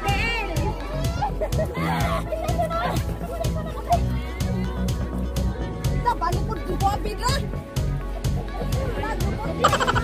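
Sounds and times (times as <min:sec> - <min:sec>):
women laughing and squealing: 0:00.0 - 0:06.5, 0:08.6 - 0:10.0
background music: 0:00.0 - 0:10.0.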